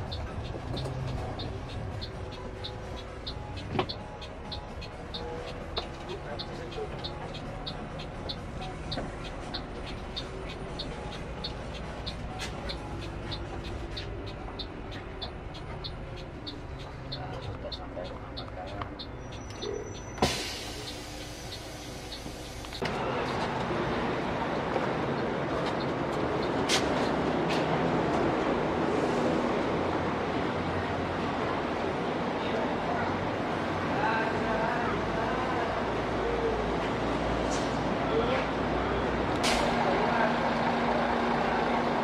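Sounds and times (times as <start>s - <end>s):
turn signal indicator ticking: 0.0s - 22.9s
bus engine running: 0.0s - 42.0s
steady noise of parked bus: 0.0s - 42.0s
loud hiss of air: 20.2s - 22.8s.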